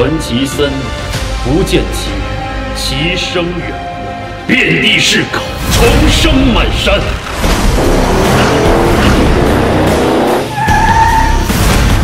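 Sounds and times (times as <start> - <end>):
music: 0.0 - 12.0
tyres squealing: 10.0 - 11.4.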